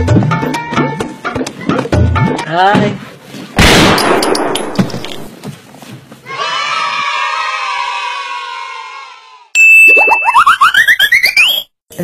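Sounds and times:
steady high beep: 9.6 - 11.6
short rising tones: 9.6 - 11.7.

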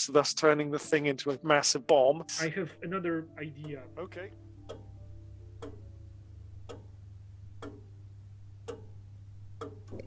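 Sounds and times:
clock ticking: 2.4 - 10.0
low steady hum: 2.4 - 10.0.

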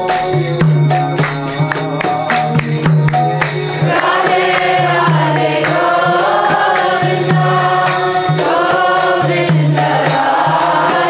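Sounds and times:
percussion strokes: 0.0 - 11.0
voices chanting together: 1.2 - 11.0.

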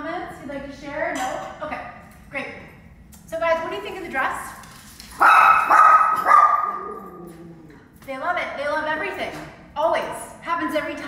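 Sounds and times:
small dog yapping: 5.2 - 7.1.

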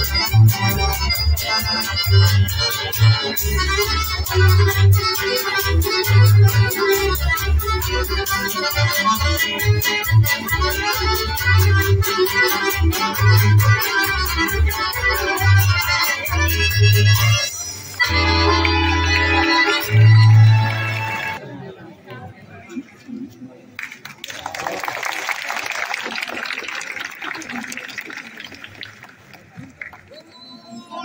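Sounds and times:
accordion playing fast melody: 0.0 - 21.4.

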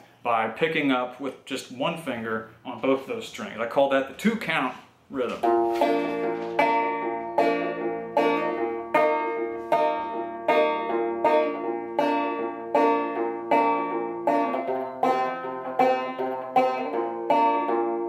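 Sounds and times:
banjo plucked: 5.2 - 18.0.

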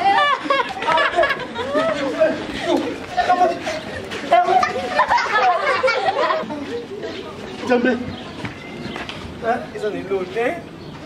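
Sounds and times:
people talking: 0.0 - 8.6.

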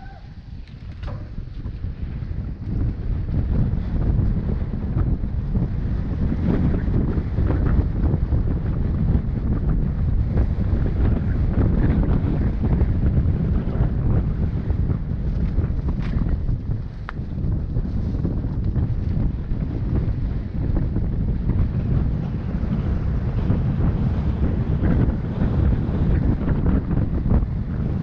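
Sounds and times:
bike rattling on rough trail: 0.0 - 28.0
wind buffeting microphone: 0.0 - 28.0.

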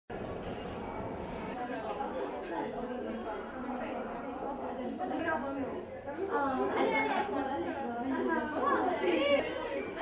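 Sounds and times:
indistinct chatter of voices: 0.1 - 10.0.

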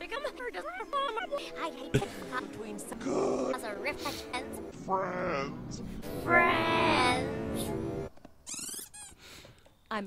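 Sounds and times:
squeaky cartoon voice: 8.5 - 9.2.

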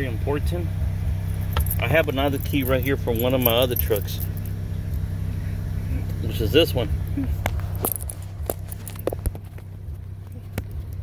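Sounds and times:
pickup engine idling: 0.0 - 11.0
keys clicking: 1.4 - 4.6, 7.5 - 9.3.

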